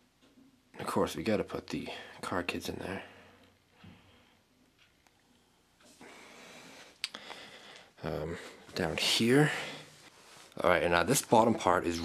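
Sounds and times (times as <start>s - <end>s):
faint soft hiss: 0.0s - 12.0s.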